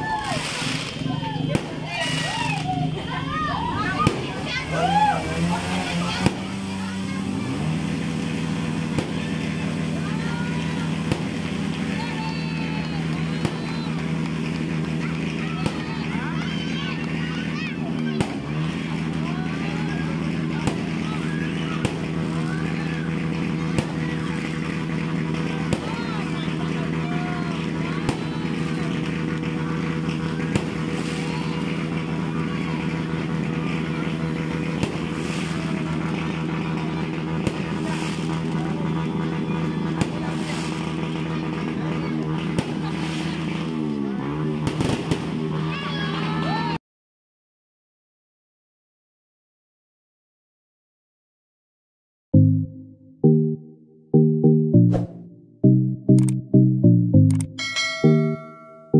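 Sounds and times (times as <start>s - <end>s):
fireworks bangs: 0.0s - 2.7s, 7.9s - 16.1s, 20.2s - 27.0s, 27.6s - 33.6s, 34.6s - 38.6s, 44.4s - 45.4s.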